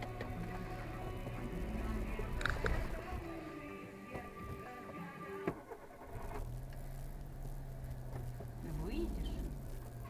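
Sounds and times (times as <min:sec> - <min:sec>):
car radio music: 0:00.0 - 0:10.0
low engine hum: 0:00.0 - 0:10.0.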